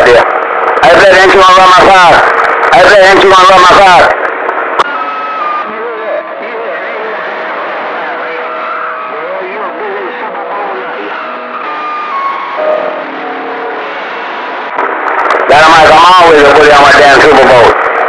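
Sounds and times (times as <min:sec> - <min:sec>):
radio static hiss: 0:00.0 - 0:18.0.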